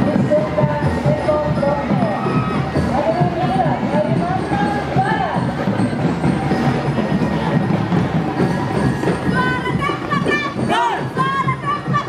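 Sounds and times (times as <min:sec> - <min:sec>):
crowd of voices: 0:00.0 - 0:12.0.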